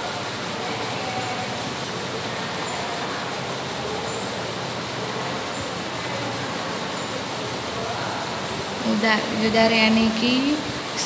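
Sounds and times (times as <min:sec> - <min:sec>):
constant rushing hiss: 0:00.0 - 0:11.0.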